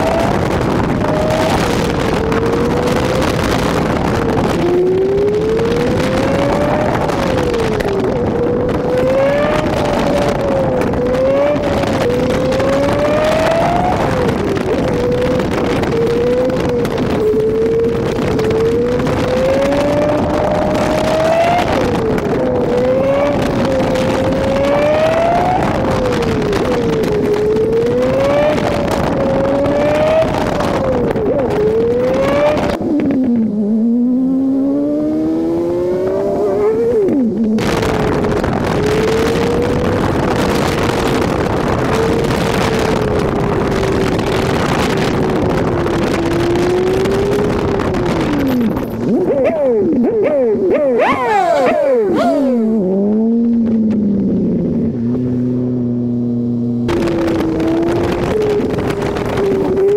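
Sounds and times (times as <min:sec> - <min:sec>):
car engine accelerating: 0:00.0 - 0:59.9
road and wind noise: 0:00.0 - 0:59.9.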